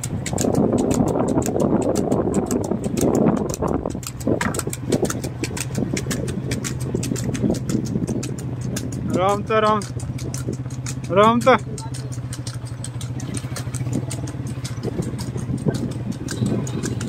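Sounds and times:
fast even ticking: 0:00.0 - 0:17.0
motorcycle engine running: 0:00.0 - 0:17.0
wind and road rush: 0:00.0 - 0:17.0.

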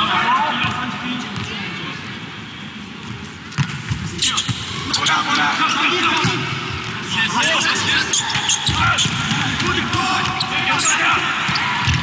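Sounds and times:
busy hall background: 0:00.0 - 0:12.0
sneakers squeaking on court: 0:08.1 - 0:12.0.

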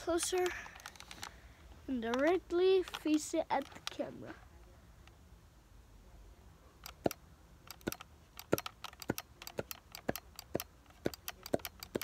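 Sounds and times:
plastic toy gun clicks: 0:06.8 - 0:12.0.

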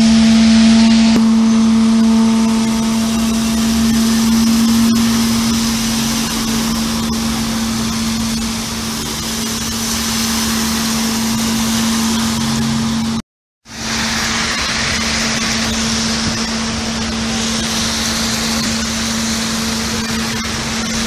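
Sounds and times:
steady engine hum: 0:00.0 - 0:21.0
tyres splashing through water: 0:01.0 - 0:21.0.

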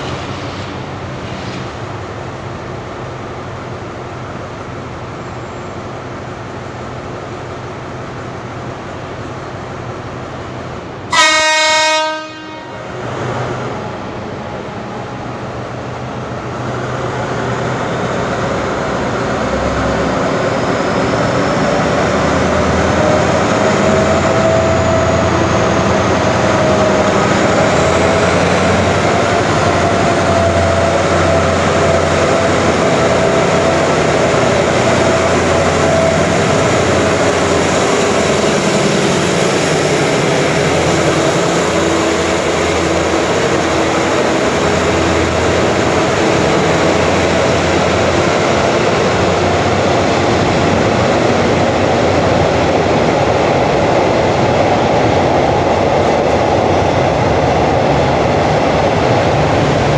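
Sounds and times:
diesel locomotive engine: 0:00.0 - 0:59.9
train wheels on rails: 0:00.0 - 0:59.9.

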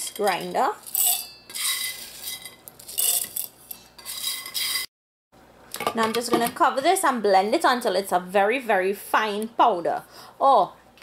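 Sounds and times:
cardamom pods rattling into metal bowl: 0:00.0 - 0:04.9.

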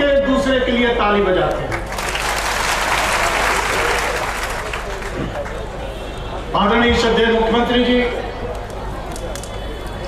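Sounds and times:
crowd applauding: 0:01.7 - 0:05.8.

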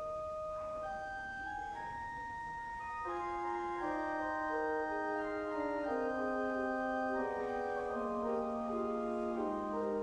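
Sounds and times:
church organ played slowly: 0:00.0 - 0:10.0.

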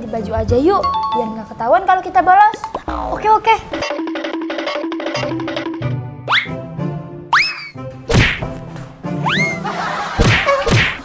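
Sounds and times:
light background music: 0:00.0 - 0:11.0
swishing whack: 0:08.1 - 0:08.6, 0:10.2 - 0:11.0.

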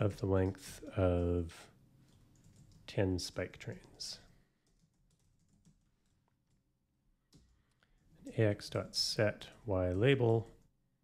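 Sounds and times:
typing on computer keyboard: 0:02.1 - 0:02.9, 0:03.7 - 0:06.6.

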